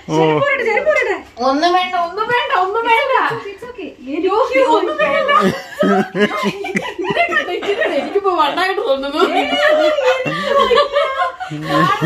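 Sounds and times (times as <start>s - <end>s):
women talking excitedly: 0.4s - 12.0s
women laughing: 4.6s - 12.0s.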